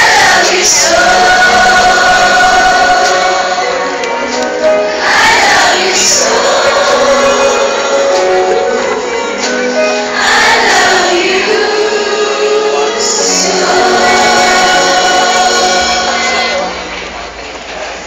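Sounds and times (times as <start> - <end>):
large choir singing: 0.0 - 17.0
musical accompaniment: 0.0 - 18.0.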